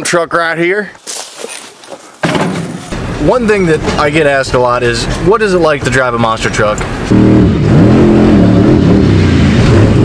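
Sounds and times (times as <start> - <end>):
truck cab rumble while driving: 2.6 - 10.0.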